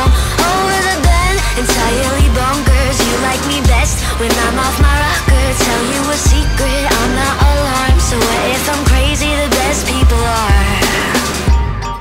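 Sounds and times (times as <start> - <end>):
pop song with vocals: 0.0 - 12.0
kick drum beat: 2.2 - 4.2, 4.8 - 9.3.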